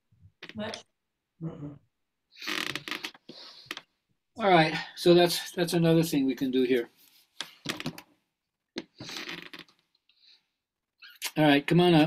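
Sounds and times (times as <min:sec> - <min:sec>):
person murmuring: 0:01.4 - 0:01.8.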